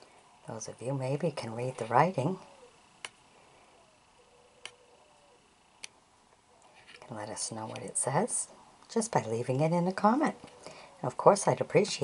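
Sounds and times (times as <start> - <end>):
faint sharp clicks: 3.0 - 3.2, 4.6 - 4.8.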